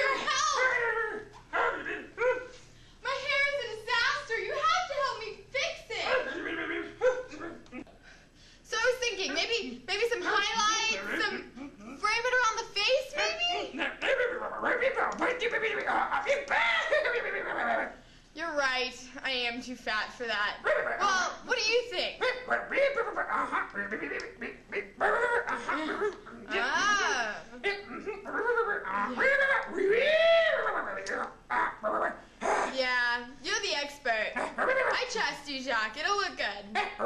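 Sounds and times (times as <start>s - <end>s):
person yipping and whimpering: 6.0s - 7.9s, 13.4s - 18.0s, 22.2s - 32.9s
person laughing: 23.3s - 29.6s.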